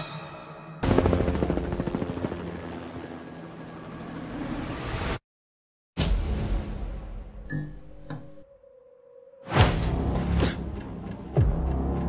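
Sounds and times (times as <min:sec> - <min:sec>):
helicopter rotor chopping: 0:00.8 - 0:04.8.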